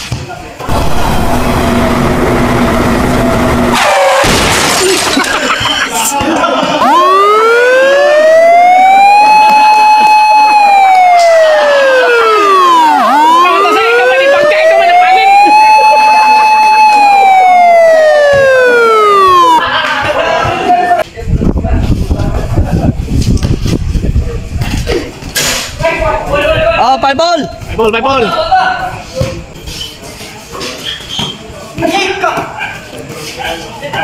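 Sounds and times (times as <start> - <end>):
siren wailing: 0.7 - 4.3, 6.8 - 19.8.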